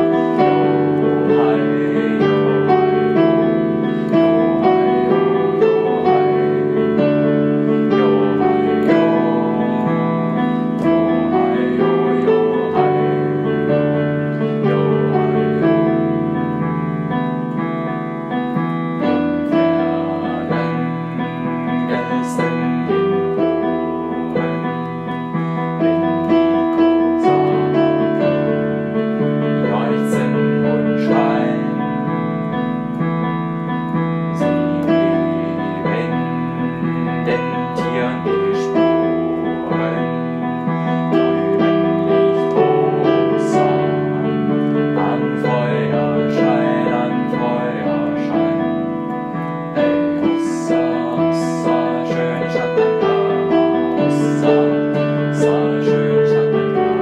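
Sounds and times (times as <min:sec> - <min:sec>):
solo piano playing slow song: 0:00.0 - 0:57.0.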